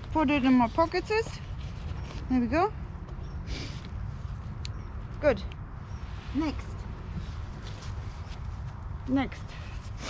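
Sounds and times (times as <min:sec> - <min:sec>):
faint rustling: 0:00.0 - 0:04.6, 0:05.9 - 0:10.0
wind rumble on microphone: 0:00.0 - 0:10.0.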